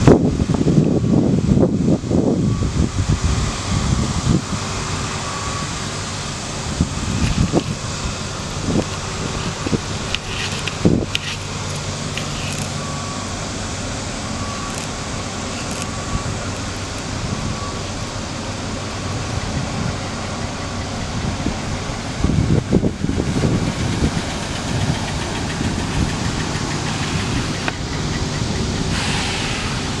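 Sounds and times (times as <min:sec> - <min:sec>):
car engine idling: 0:01.8 - 0:30.0.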